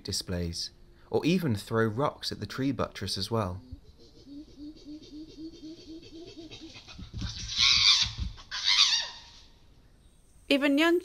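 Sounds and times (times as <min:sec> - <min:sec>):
chimpanzee panted hoots: 0:03.8 - 0:09.5
chimpanzee screams: 0:04.3 - 0:09.6.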